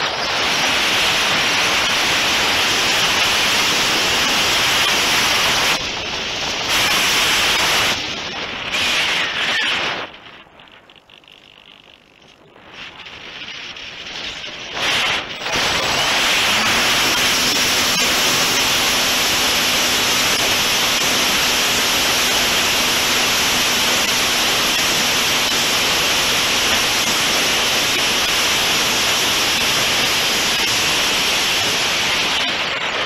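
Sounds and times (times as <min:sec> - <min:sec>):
rushing airflow over microphone: 0:00.0 - 0:11.2, 0:12.0 - 0:33.0.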